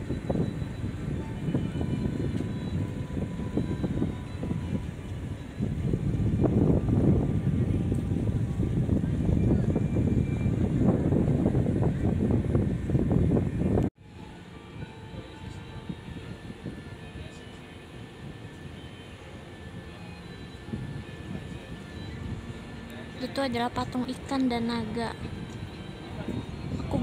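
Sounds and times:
city ambience: 0.0 - 27.0
faint background music: 14.0 - 27.0.

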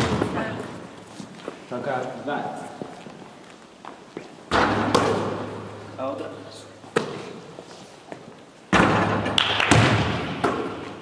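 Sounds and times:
basketball bouncing on gym floor: 0.0 - 0.7, 4.5 - 5.6, 8.7 - 11.0
basketball striking hoop: 8.7 - 10.9.

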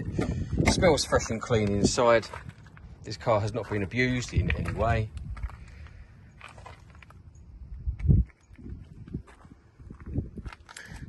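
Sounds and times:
footsteps on gravel: 0.0 - 11.0
wind buffeting microphone: 0.0 - 11.0.

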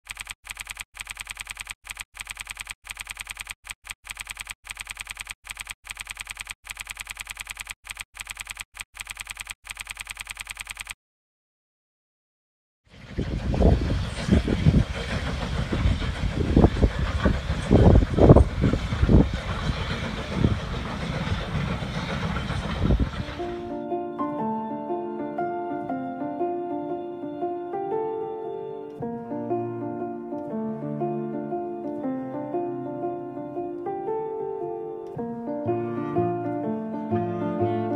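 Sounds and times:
rapid typing clicks: 0.0 - 11.0
train passing rumble: 12.9 - 23.8
soft piano music: 23.4 - 37.9.

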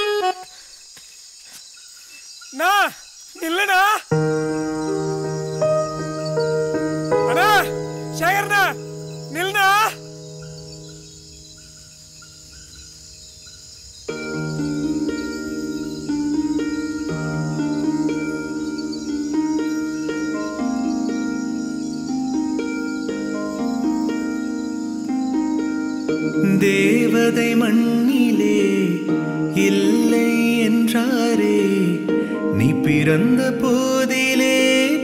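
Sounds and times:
crickets chirping: 0.0 - 35.0
person singing: 6.4 - 10.0, 26.1 - 35.0.

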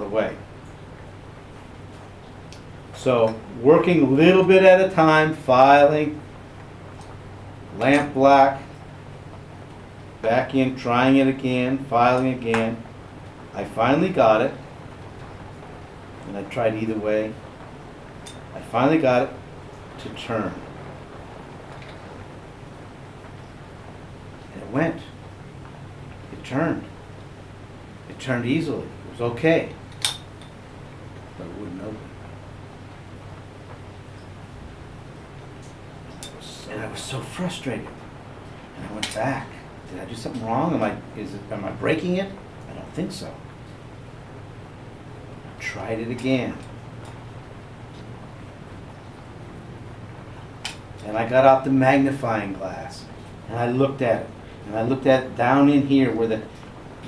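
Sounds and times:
faint hiss: 0.0 - 57.0
steady low hum: 0.0 - 57.0.

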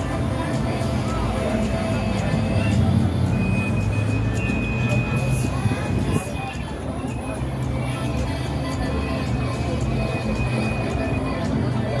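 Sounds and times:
car traffic running by: 0.0 - 12.0
music: 0.0 - 12.0
voices: 0.0 - 12.0.

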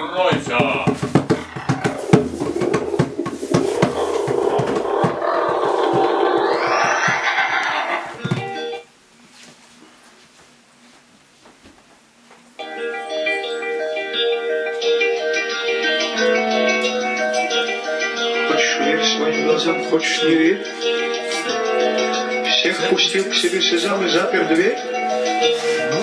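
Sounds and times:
rising whoosh: 1.1 - 8.6.

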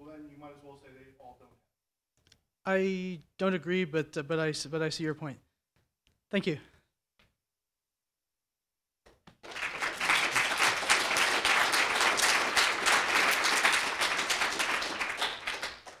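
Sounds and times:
audience applauding: 9.3 - 16.0.

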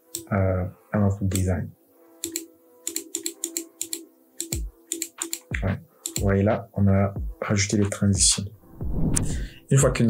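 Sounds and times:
faint background music: 0.0 - 10.0
sharp computer clicks: 2.2 - 6.3
low falling thump: 8.7 - 9.4.

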